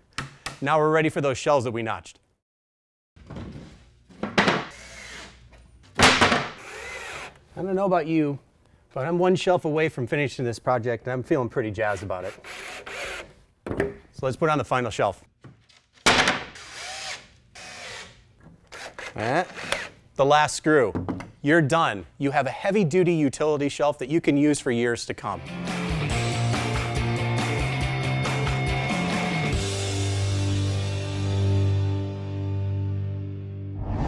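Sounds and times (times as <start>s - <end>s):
cordless drill driving screws: 4.7s - 5.4s, 6.6s - 7.4s, 12.3s - 13.4s, 16.6s - 20.0s.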